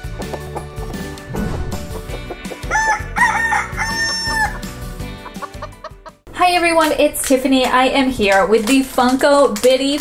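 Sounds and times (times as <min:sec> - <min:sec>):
intro music: 0:00.0 - 0:05.9
rooster crowing: 0:02.6 - 0:04.7.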